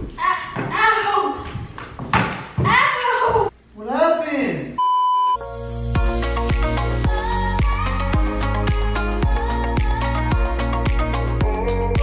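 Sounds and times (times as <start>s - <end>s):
high censor bleep: 4.8s - 5.4s
electronic intro music: 5.4s - 12.0s.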